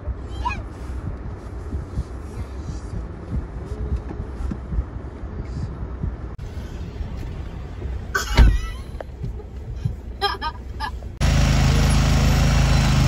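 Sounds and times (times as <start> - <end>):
car cabin rumble: 0.0 - 11.2.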